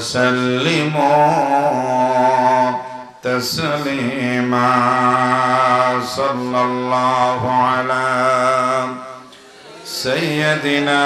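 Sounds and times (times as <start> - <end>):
man chanting through a microphone: 0.0 - 11.0.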